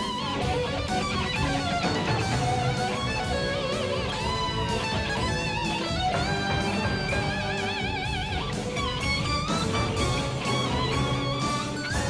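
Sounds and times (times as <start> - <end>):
electric guitar solo: 0.0 - 12.0
rock band playing: 0.0 - 12.0.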